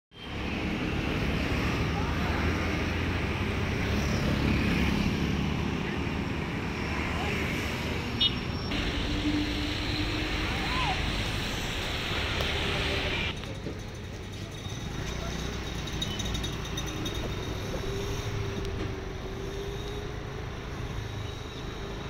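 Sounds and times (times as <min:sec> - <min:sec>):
street traffic noise: 0:00.1 - 0:22.0.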